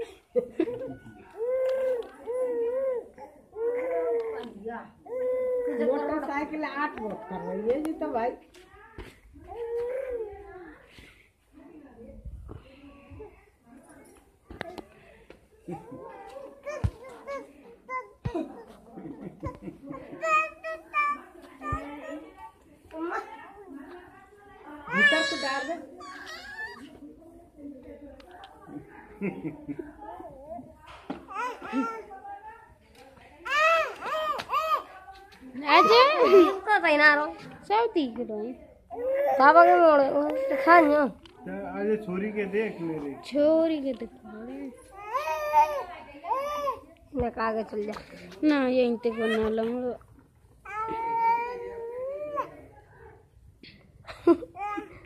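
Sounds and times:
quiet voices: 0:00.0 - 0:07.6.

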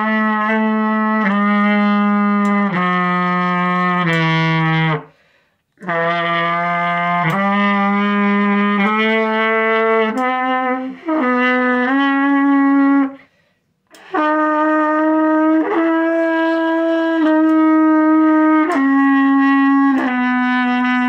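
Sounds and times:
trumpet playing held notes: 0:00.0 - 0:05.1, 0:05.8 - 0:13.3, 0:13.9 - 0:21.0.

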